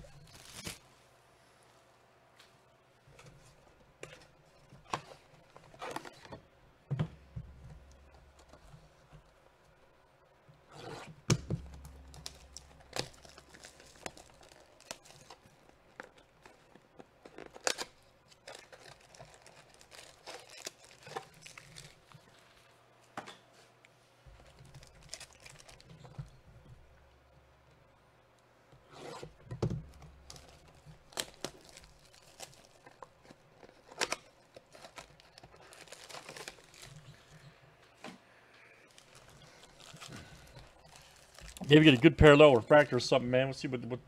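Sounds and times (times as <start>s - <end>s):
cardboard box and foil packs handled: 0.0s - 0.8s, 11.5s - 22.7s, 24.3s - 27.4s, 29.8s - 37.6s, 38.8s - 42.7s
plastic wrap tearing and crinkling: 0.0s - 0.8s, 11.6s - 22.4s, 24.4s - 26.4s, 29.3s - 37.4s, 38.9s - 42.3s.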